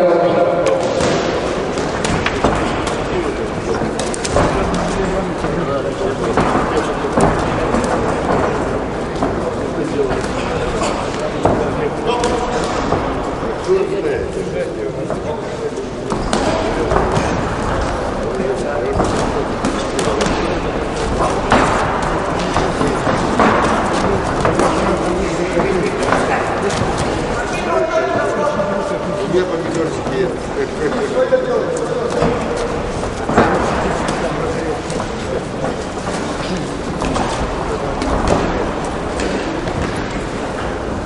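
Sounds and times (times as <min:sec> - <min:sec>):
spectators: 0:00.0 - 0:41.0.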